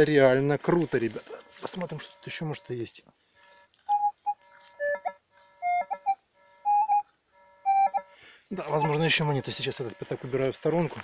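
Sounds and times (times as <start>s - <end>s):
metal detector beeps: 1.3s - 11.0s.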